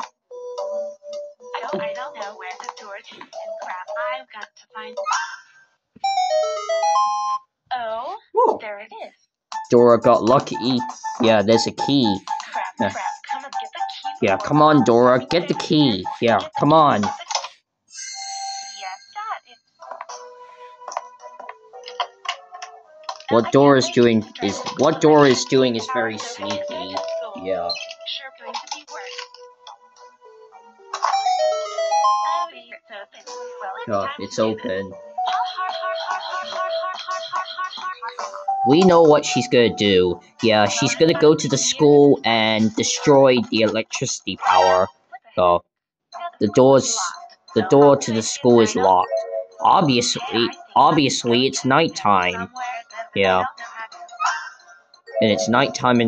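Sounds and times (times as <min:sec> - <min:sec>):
person speaking: 0:01.6 - 0:05.3, 0:09.6 - 0:17.6, 0:23.1 - 0:29.3, 0:33.2 - 0:45.6, 0:46.2 - 0:54.1, 0:55.1 - 0:56.0
electronic chime jingle: 0:06.0 - 0:07.4, 0:09.6 - 0:12.9, 0:13.8 - 0:17.2, 0:31.1 - 0:32.5, 0:48.7 - 0:50.5, 0:55.1 - 0:56.0.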